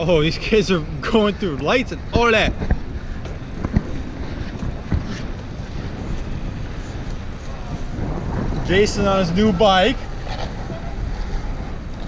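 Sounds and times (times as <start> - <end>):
wind rushing over microphone: 0.0 - 12.0
low rumble: 1.9 - 12.0.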